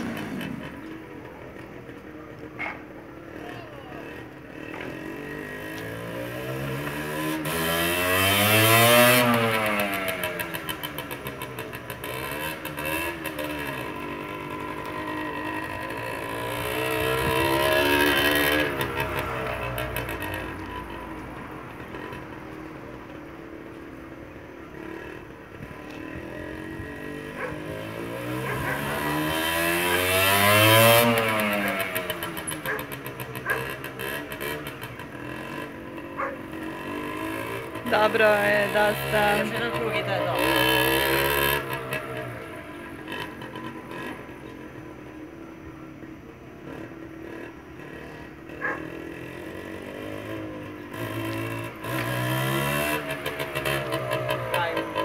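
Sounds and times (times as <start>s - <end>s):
dirt bike engine revving: 0.0s - 1.1s, 3.2s - 44.8s, 46.6s - 55.0s.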